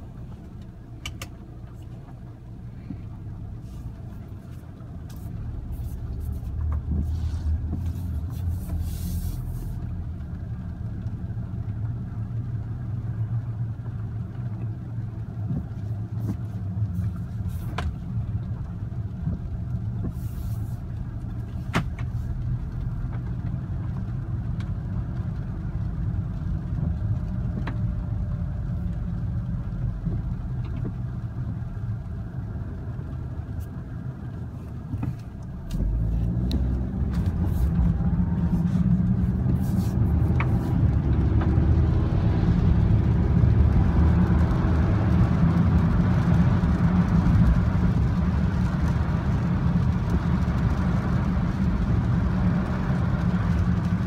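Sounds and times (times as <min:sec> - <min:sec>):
car engine drone: 0:00.0 - 0:54.0.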